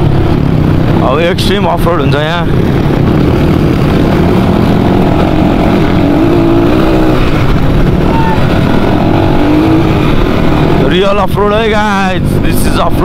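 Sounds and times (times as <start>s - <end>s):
dirt bike engine running: 0.0s - 13.0s
wind and road noise rumble: 0.0s - 13.0s.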